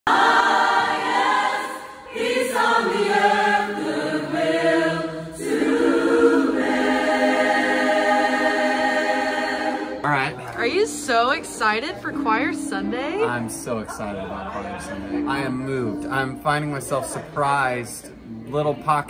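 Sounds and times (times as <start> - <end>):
choir singing in harmony: 0.1 - 17.4.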